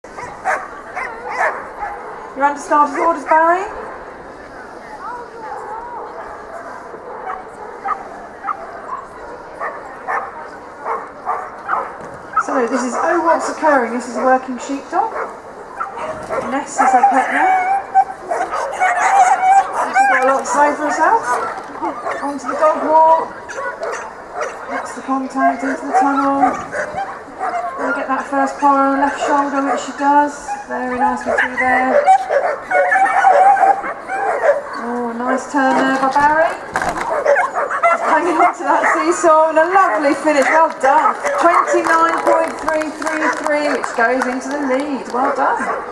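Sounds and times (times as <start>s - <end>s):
murmur of distant voices: 0.0s - 45.9s
dog barking: 0.2s - 2.3s, 6.0s - 13.6s, 15.1s - 20.4s, 21.0s - 22.8s, 23.5s - 28.0s, 31.0s - 36.0s, 37.0s - 39.2s.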